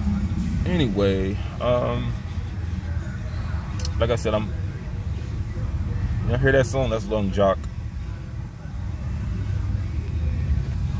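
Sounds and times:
car rumble inside cabin: 0.0s - 10.9s.

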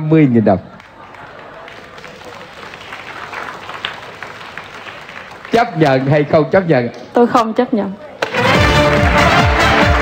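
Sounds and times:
voices among clapping: 0.7s - 6.3s
audience applauding: 0.8s - 6.5s, 8.2s - 10.0s.

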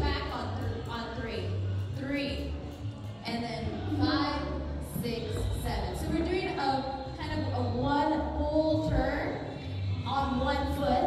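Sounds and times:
woman speaking into a microphone: 0.0s - 2.4s, 3.3s - 11.0s
music: 0.0s - 11.0s.

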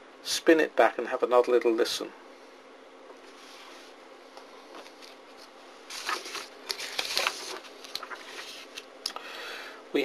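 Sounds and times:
paper rustling and sliding: 3.2s - 4.0s, 4.7s - 8.9s.

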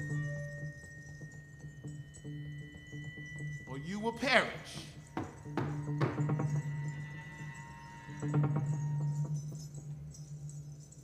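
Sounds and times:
drum strikes: 4.5s - 6.6s.

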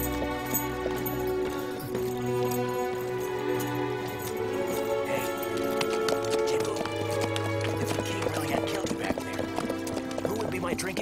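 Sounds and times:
horse hooves clip-clopping: 0.0s - 11.0s
music with long held notes: 0.0s - 11.0s.

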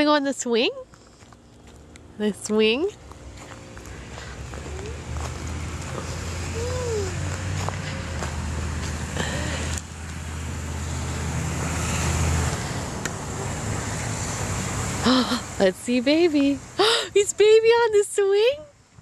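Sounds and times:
vehicle engine rumbling: 0.0s - 19.0s.

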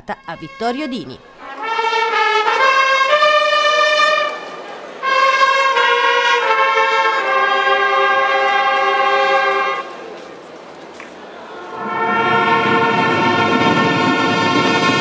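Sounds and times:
herald trumpet fanfare: 0.1s - 9.9s, 11.6s - 15.0s.

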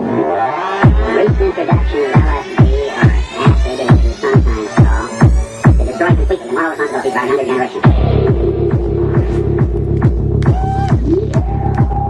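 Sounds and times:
sustained bass drone: 0.0s - 12.0s
four-on-the-floor kick drum: 7.9s - 12.0s.

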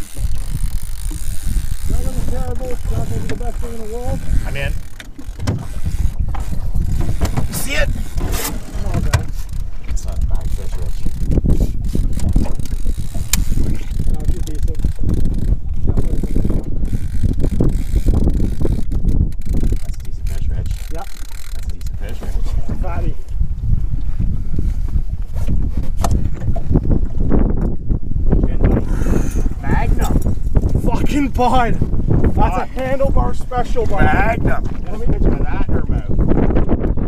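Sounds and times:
fishing reel ticking: 0.0s - 8.8s, 9.4s - 22.2s
wind rumble on microphone: 0.0s - 37.0s.

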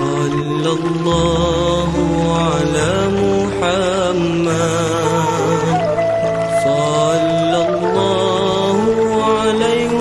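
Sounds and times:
person singing devotional song: 0.0s - 10.0s
sustained low accompaniment: 0.0s - 10.0s.

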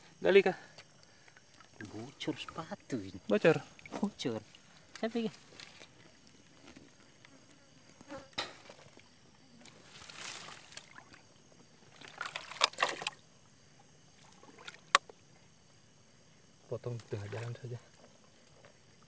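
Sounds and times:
insect chirring: 0.0s - 19.0s
hands splashing in muddy water: 10.0s - 13.2s.

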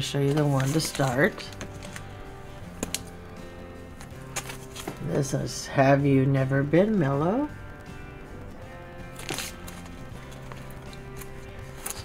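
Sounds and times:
plastic sleeve crinkling: 0.0s - 5.1s, 9.1s - 12.0s
quiet background music: 0.0s - 12.0s.

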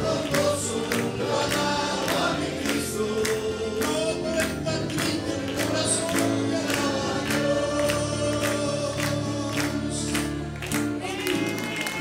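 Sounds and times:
congregation singing worship song: 0.0s - 12.0s
hand-clapping: 0.0s - 12.0s
instrumental backing: 0.0s - 12.0s.

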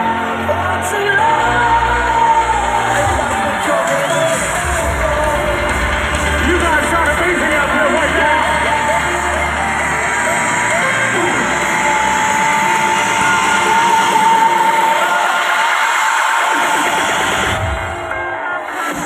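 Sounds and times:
amplified electronic music: 0.0s - 19.0s
audience yelling and whooping: 0.0s - 19.0s.

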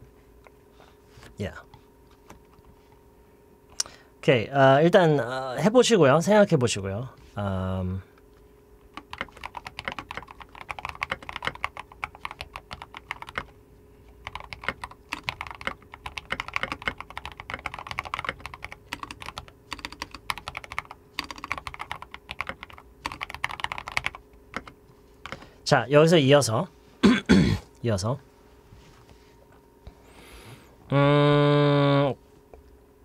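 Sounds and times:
typing on computer keyboard: 8.9s - 13.5s, 14.2s - 25.4s.

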